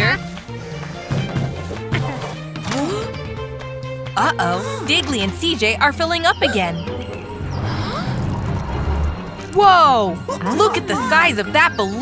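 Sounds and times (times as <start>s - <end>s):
background music: 0.0s - 12.0s
cartoon low rumble: 7.3s - 9.6s.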